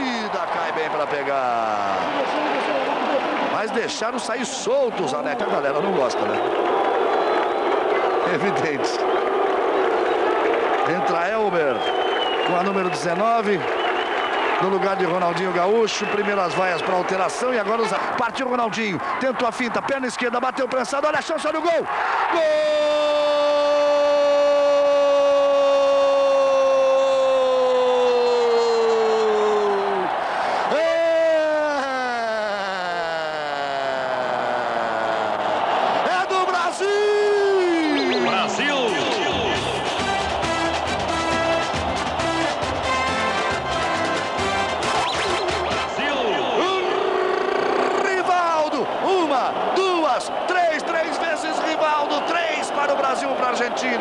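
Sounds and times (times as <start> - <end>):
commentator shouting goal cry: 21.3 - 35.2, 36.0 - 40.0, 45.8 - 54.0.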